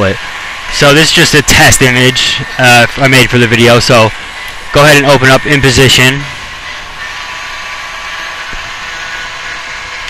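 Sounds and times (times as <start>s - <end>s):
faint high steady tones: 0.0s - 10.0s.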